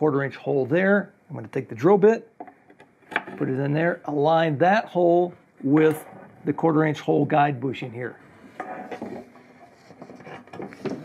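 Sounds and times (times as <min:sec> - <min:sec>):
small wooden knocks: 0:02.4 - 0:03.5
plywood boards sliding: 0:08.4 - 0:11.0.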